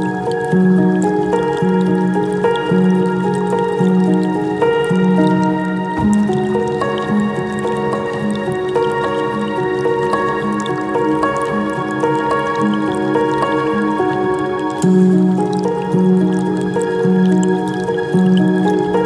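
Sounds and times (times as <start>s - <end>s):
slow ambient music: 0.0s - 19.0s
water trickling and dripping: 0.0s - 19.0s.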